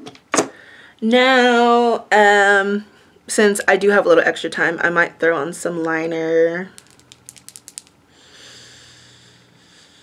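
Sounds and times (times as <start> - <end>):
makeup items clicking: 6.8 - 8.0.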